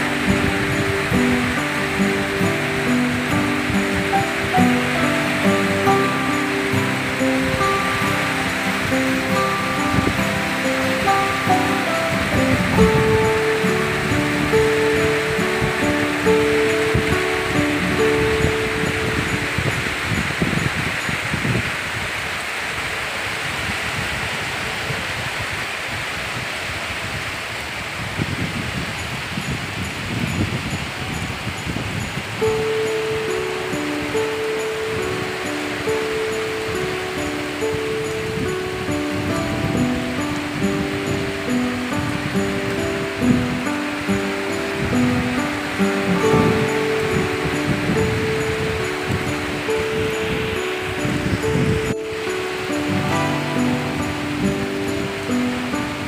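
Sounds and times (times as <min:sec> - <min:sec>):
melodic background music: 0:00.0 - 0:21.1, 0:32.3 - 0:56.0
heavy rain hissing: 0:00.0 - 0:56.0.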